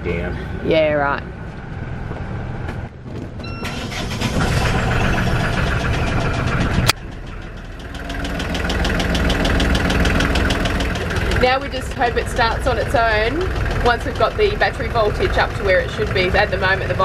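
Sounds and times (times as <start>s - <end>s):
diesel engine starting and running: 0.1s - 17.0s
short beeps: 3.4s - 3.9s.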